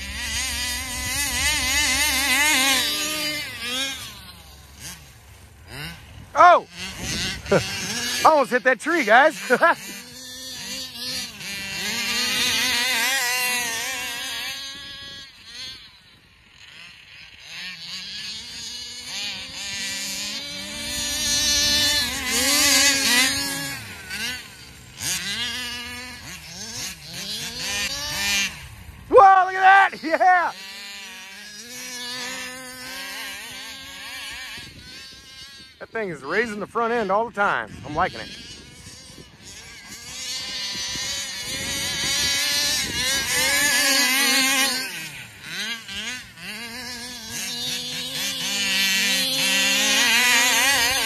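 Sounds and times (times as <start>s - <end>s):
rc car engine revving: 0.0s - 51.0s.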